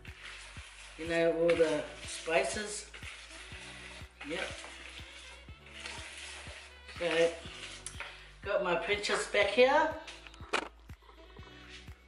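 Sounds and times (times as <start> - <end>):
whisk stirring dry flour in bowl: 0.0 - 10.2
background music with steady beat: 0.0 - 12.0.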